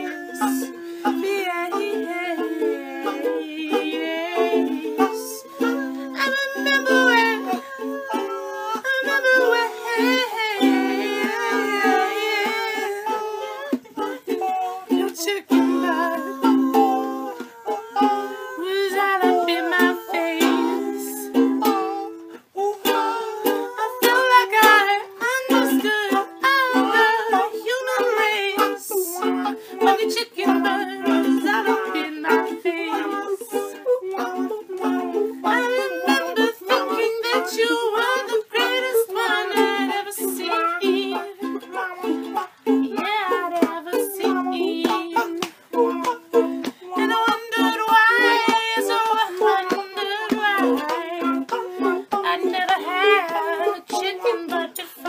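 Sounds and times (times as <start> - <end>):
ukuleles strummed: 0.0 - 55.0.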